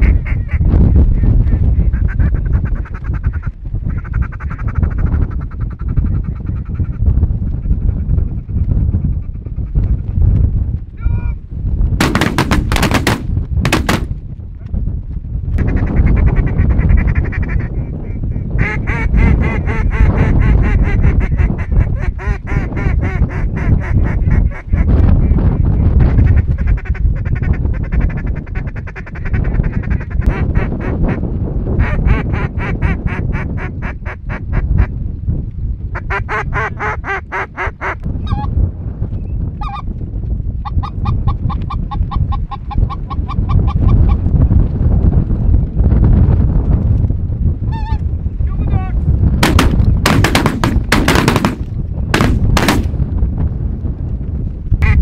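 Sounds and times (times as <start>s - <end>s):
steady low rumble: 10.1s - 15.6s, 48.2s - 54.9s
shotgun shot: 12.0s - 14.2s, 49.4s - 53.0s.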